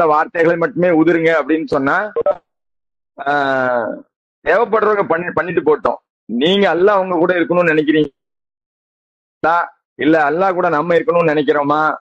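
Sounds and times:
man speaking: 0:00.0 - 0:02.4, 0:03.2 - 0:08.2, 0:09.4 - 0:12.0.

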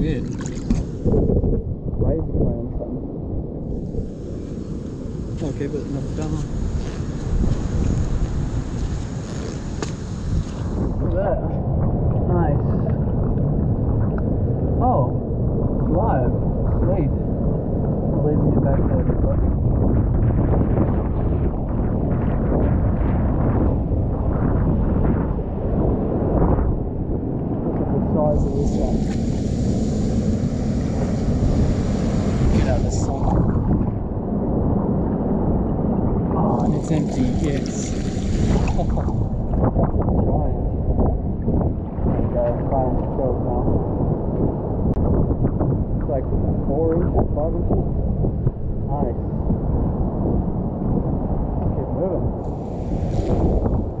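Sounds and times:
wind buffeting microphone: 0:00.0 - 0:54.0
washing seawater hiss: 0:03.8 - 0:11.0, 0:28.3 - 0:33.4, 0:36.6 - 0:39.2, 0:52.4 - 0:53.8.

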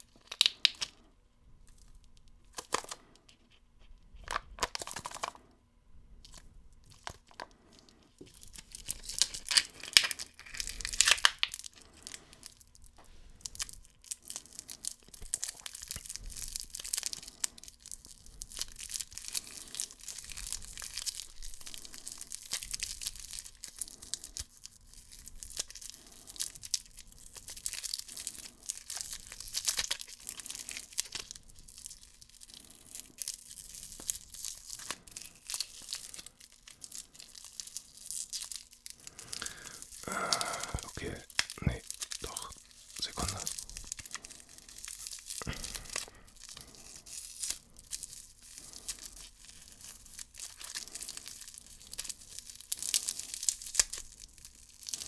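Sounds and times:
cellophane wrapper crinkling: 0:00.0 - 0:05.6, 0:06.2 - 0:55.0.

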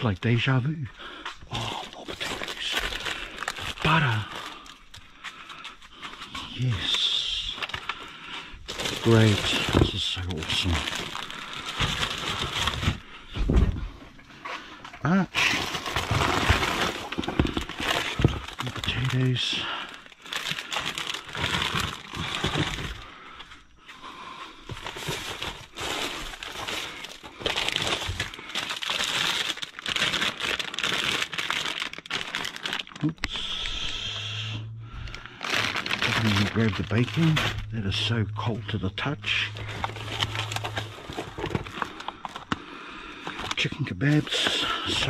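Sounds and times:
plastic bags crinkling: 0:01.4 - 0:13.2, 0:15.1 - 0:23.6, 0:24.6 - 0:34.0, 0:34.7 - 0:45.0.

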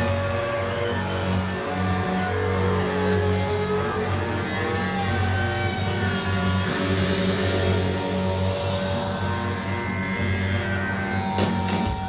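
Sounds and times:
held bass notes: 0:00.0 - 0:12.0.

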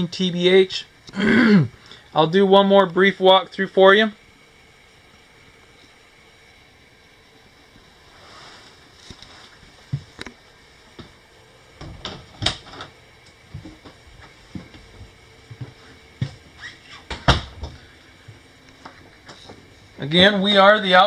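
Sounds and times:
footsteps indoors: 0:08.3 - 0:10.2, 0:13.2 - 0:19.7.

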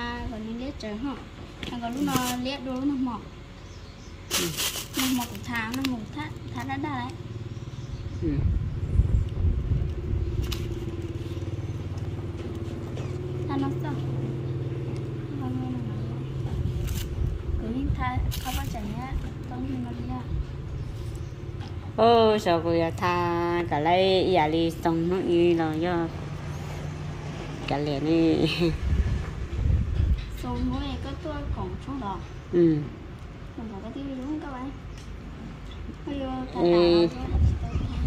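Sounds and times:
woman speaking: 0:00.0 - 0:03.4, 0:04.3 - 0:07.2, 0:17.6 - 0:20.4, 0:21.9 - 0:26.3, 0:27.6 - 0:28.8, 0:35.9 - 0:38.0
low rumble: 0:05.2 - 0:32.2.

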